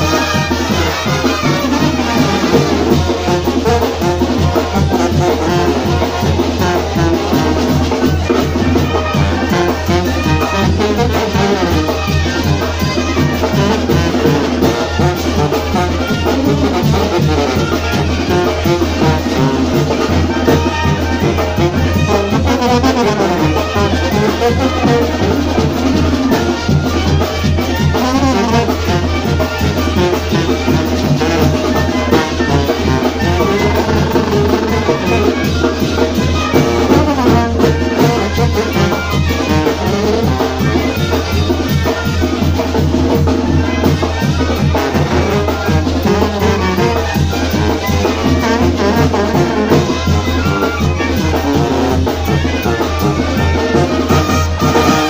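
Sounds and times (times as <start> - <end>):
brass band playing: 0.0 - 55.0
steady drumbeat: 0.0 - 55.0.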